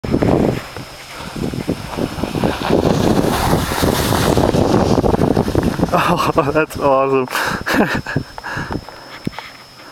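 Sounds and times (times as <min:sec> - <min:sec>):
wind buffeting microphone: 0:00.0 - 0:09.4
skis sliding over snow: 0:00.2 - 0:06.8.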